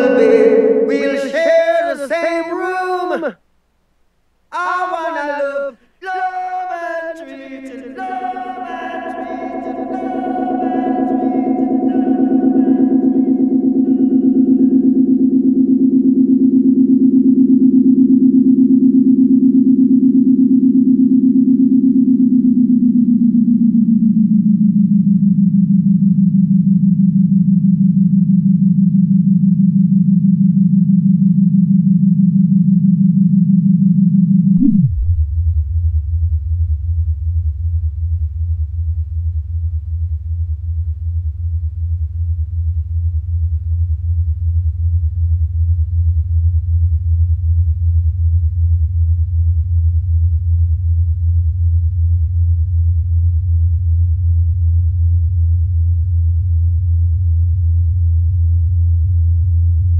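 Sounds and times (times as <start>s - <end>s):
tape echo fluttering drone: 8.1s - 44.6s.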